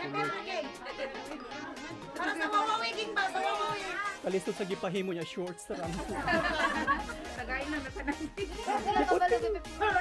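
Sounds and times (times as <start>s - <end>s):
children and adults talking: 0.0s - 10.0s.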